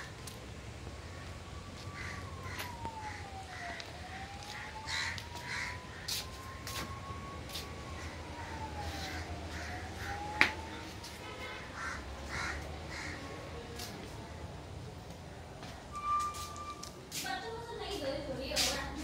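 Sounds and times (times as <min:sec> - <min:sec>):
crows cawing: 0:01.8 - 0:06.2, 0:08.9 - 0:10.5, 0:11.7 - 0:13.4
faint wailing tone: 0:15.9 - 0:17.0.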